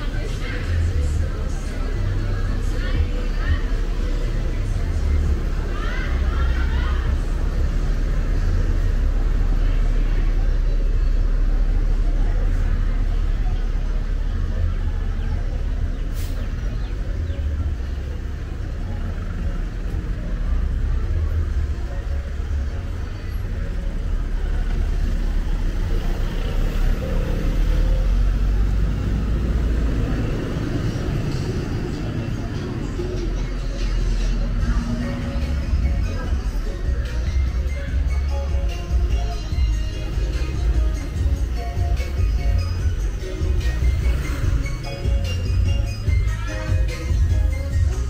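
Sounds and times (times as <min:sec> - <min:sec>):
road noise: 0:00.0 - 0:48.0
vehicle engines rumbling: 0:00.0 - 0:48.0.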